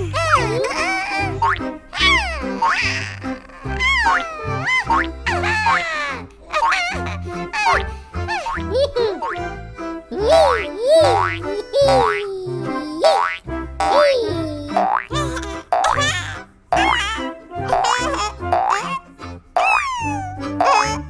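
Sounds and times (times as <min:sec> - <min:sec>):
bouncy children's music: 0:00.0 - 0:21.0
cartoon boing sound effects: 0:14.7 - 0:16.0, 0:17.7 - 0:18.8, 0:19.6 - 0:21.0.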